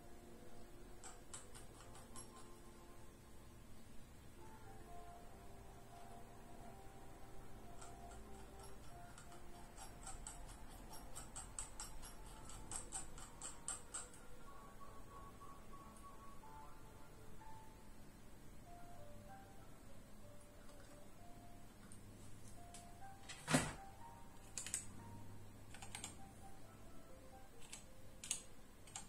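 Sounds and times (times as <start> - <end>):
faint steady hum: 0.0 - 29.0
mouse scroll wheel clicking: 1.0 - 2.6, 7.7 - 14.3, 24.4 - 24.9, 25.7 - 26.3, 27.6 - 29.0
keyboard key clicks: 24.4 - 24.9, 25.7 - 26.3, 27.6 - 29.0.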